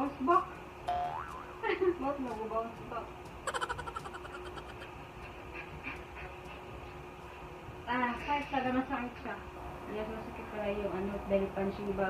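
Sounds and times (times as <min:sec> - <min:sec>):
woman laughing: 0:03.5 - 0:04.9.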